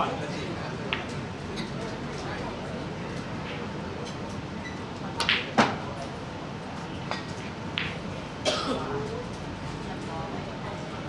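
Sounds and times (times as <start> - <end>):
person coughing: 8.4 - 9.0.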